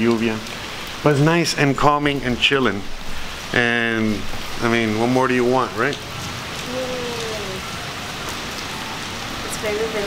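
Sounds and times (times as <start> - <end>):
rain on wet pavement: 0.0 - 10.0.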